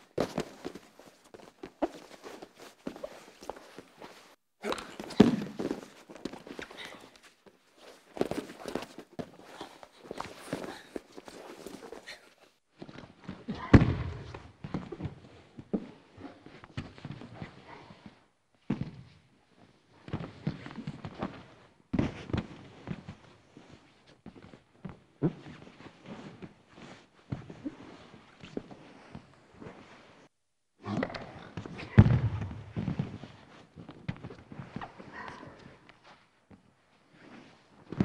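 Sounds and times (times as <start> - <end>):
bodies thudding on foam mat: 0.1 - 6.6
bodies thudding on wrestling mat: 4.9 - 6.5.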